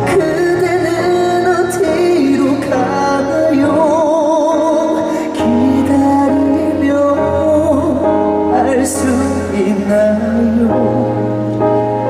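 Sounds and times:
man singing with vibrato: 0.0s - 11.5s
backing music: 0.0s - 12.0s.

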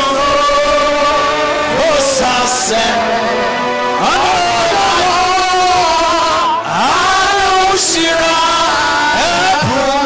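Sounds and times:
congregation singing: 0.0s - 10.0s.

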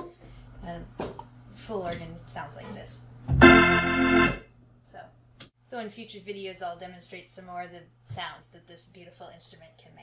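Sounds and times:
organ chord: 3.3s - 4.4s.

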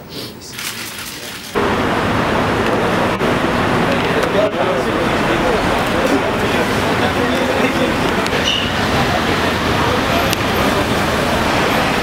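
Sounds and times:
people chattering outdoors: 0.0s - 12.0s
vehicle noise rushing: 1.5s - 12.0s.

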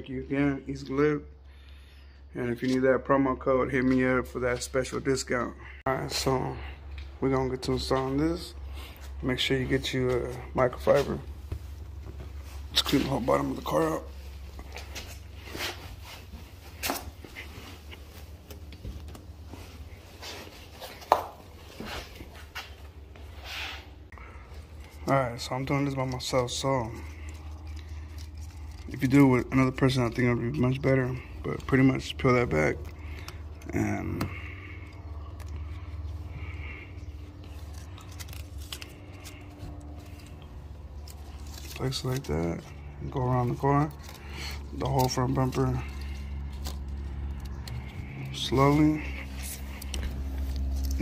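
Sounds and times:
steady low hum: 0.0s - 51.0s
backing film peeling crackle: 35.0s - 51.0s.

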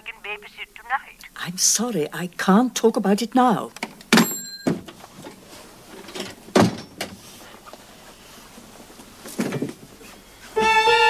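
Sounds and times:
door shutting thud: 6.2s - 7.1s.

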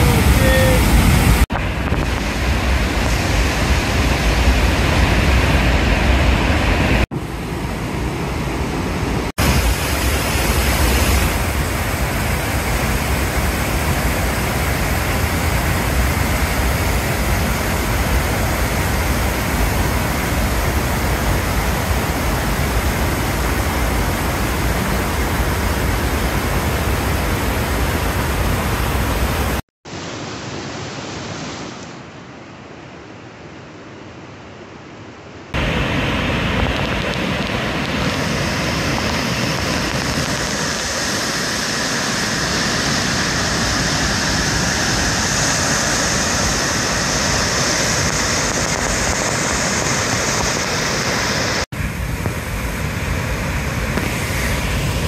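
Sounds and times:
waterfall rushing: 0.0s - 31.7s, 35.6s - 55.0s
river rushing: 0.0s - 55.0s.

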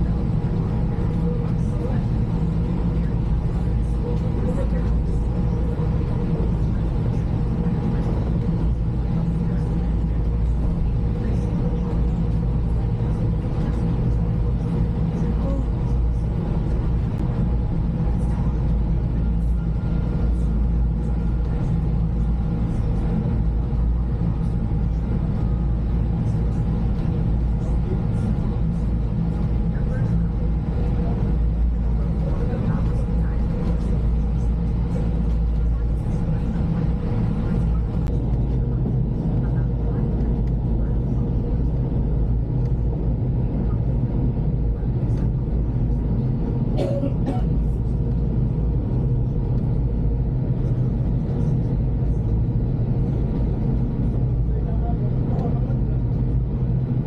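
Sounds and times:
ferry engines rumbling: 0.0s - 57.0s.

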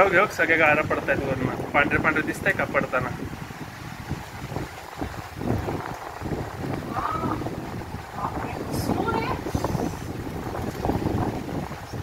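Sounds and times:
heavy rain: 0.0s - 12.0s
storm wind buffeting microphone: 0.0s - 12.0s.

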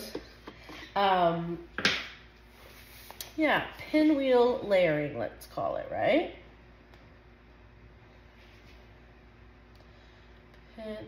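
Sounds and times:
woman speaking: 0.9s - 1.7s, 3.3s - 6.4s, 10.7s - 11.0s.

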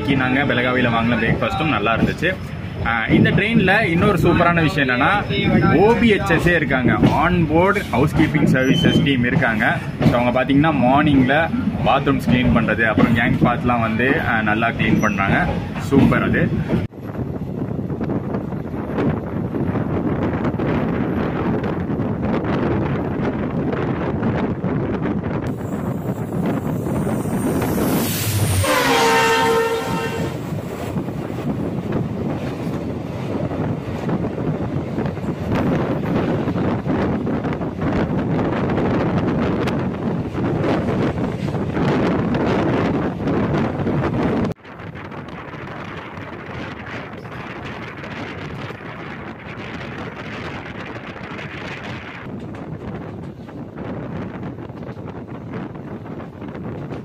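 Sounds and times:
train rumble: 0.0s - 57.0s
wind on microphone: 11.1s - 57.0s
locomotive horn: 28.4s - 30.5s.

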